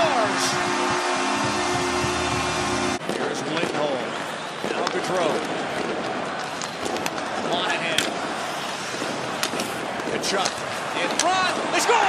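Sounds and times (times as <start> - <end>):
goal horn: 0.0 - 3.0
crowd cheering: 0.0 - 12.0.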